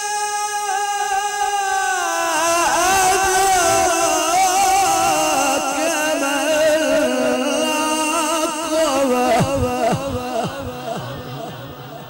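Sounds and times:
solo voice chanting recitation: 0:00.0 - 0:12.0.

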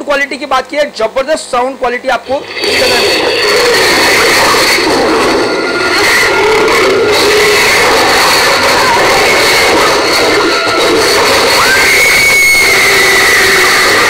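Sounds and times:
action film soundtrack through tv speakers: 0:02.1 - 0:14.0.

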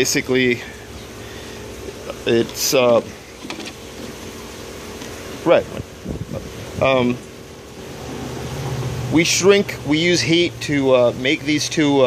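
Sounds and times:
steady background hum: 0:00.0 - 0:12.0.

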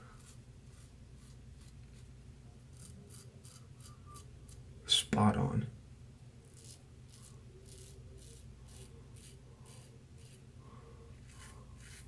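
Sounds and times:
razor scraping stubble: 0:00.2 - 0:02.1, 0:02.7 - 0:04.6, 0:06.5 - 0:10.4, 0:11.2 - 0:12.0.

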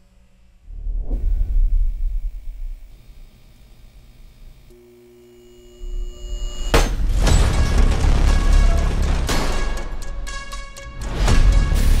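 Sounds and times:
electronic hum of held tones: 0:00.0 - 0:07.0
low rumble: 0:00.6 - 0:03.0.

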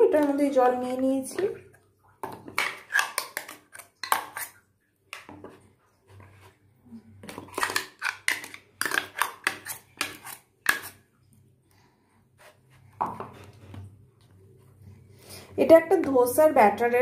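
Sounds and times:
spoon scraping steel container: 0:02.5 - 0:04.6, 0:07.2 - 0:11.0.

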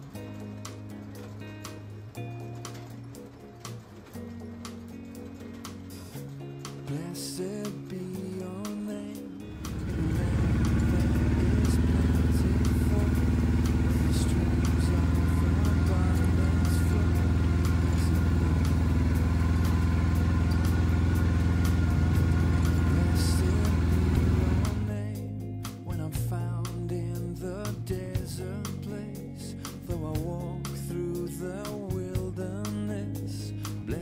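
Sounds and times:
tractor engine running: 0:00.0 - 0:25.2
guitar music: 0:00.0 - 0:34.0.

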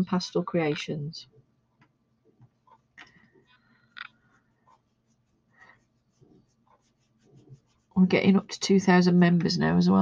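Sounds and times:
sponge rubbing on paper: 0:04.2 - 0:08.6.

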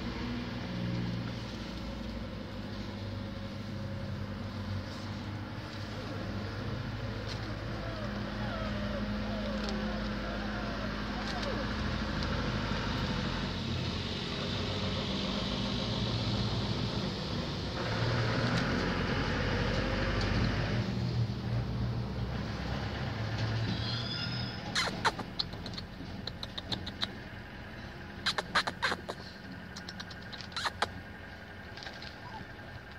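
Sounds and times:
low mechanical hum: 0:00.0 - 0:22.2.

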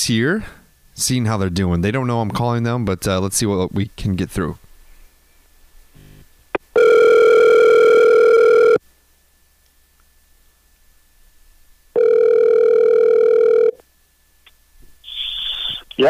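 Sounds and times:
telephone ringback tone: 0:06.8 - 0:08.8, 0:12.0 - 0:13.8.

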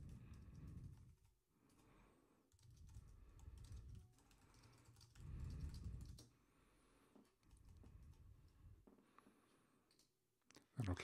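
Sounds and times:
typing on computer keyboard: 0:00.0 - 0:01.9, 0:02.5 - 0:06.3, 0:07.2 - 0:08.6.

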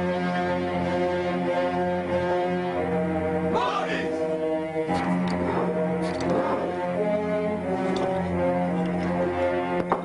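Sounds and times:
droning chord: 0:00.0 - 0:10.0.

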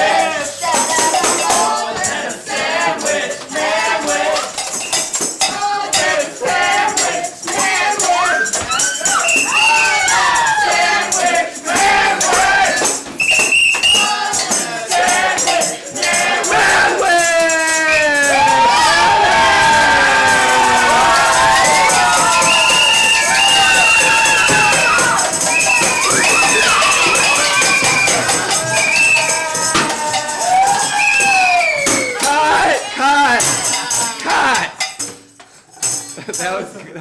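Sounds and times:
voices singing and calling out: 0:00.0 - 0:34.9
jingling shaken percussion: 0:00.0 - 0:37.0
lively music: 0:00.0 - 0:37.0.

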